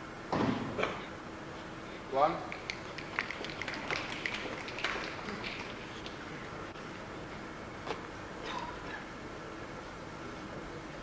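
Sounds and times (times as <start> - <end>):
scattered hand-clapping: 2.5 - 6.2.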